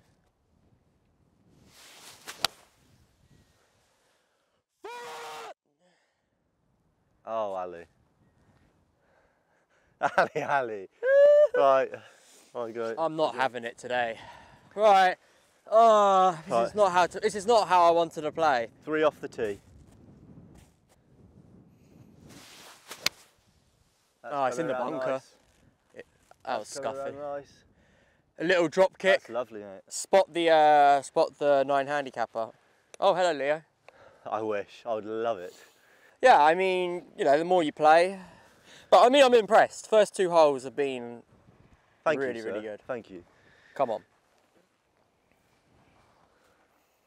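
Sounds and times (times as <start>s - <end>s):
golf club swing whoosh: 1.7s - 2.8s, 22.2s - 23.3s.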